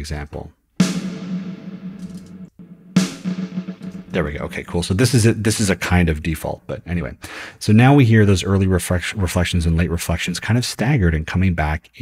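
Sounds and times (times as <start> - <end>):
snare drum hit with reverb: 0.8 - 4.9.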